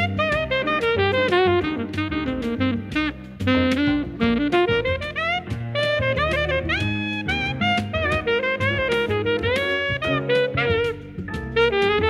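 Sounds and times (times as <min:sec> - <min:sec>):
bass: 0:00.0 - 0:12.0
guitar: 0:00.0 - 0:12.0
saxophone jazz melody: 0:00.0 - 0:12.0.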